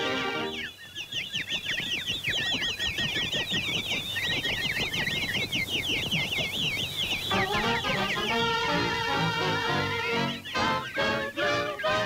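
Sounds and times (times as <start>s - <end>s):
cartoon bird chirps: 0.5s - 12.0s
orchestral score: 7.3s - 12.0s.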